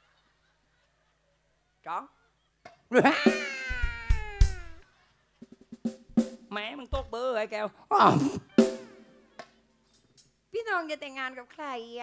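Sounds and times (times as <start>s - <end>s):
person imitating animal cry: 2.9s - 4.8s
drum strokes: 3.1s - 4.8s, 5.5s - 7.2s, 8.4s - 9.2s.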